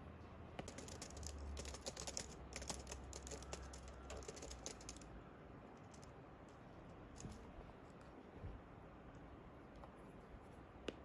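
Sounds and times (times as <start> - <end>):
plastic keyboard key clicks: 0.6 - 5.1.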